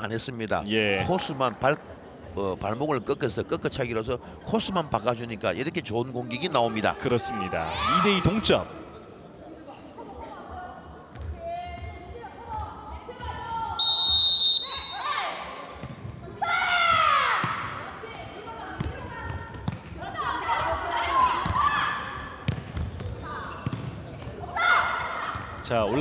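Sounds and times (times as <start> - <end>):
referee's whistle blast: 13.8 - 15.1.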